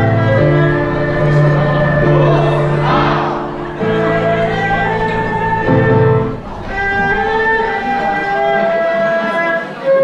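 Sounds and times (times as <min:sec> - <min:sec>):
erhu sliding melody: 0:00.0 - 0:10.0
flute: 0:00.0 - 0:10.0.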